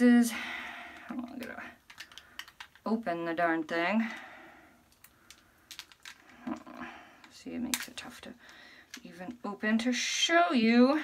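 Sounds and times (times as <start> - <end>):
package clicking and cracking: 1.8 - 2.9, 4.9 - 6.8.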